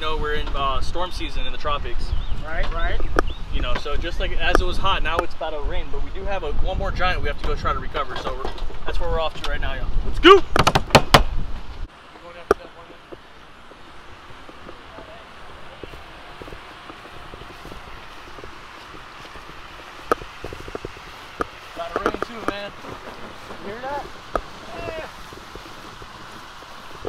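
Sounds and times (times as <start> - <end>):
people talking indistinctly: 21.7 - 25.1.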